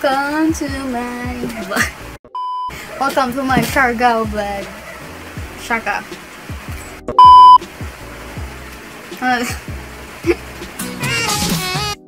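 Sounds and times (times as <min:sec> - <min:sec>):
background music with steady beat: 0:00.0 - 0:12.0
loud test-tone beep: 0:02.4 - 0:02.8, 0:07.2 - 0:07.6.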